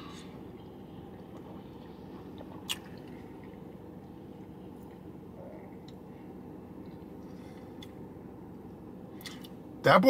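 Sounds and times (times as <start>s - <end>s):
steady low hum: 0.0s - 10.0s
man sipping and swallowing: 1.1s - 4.2s.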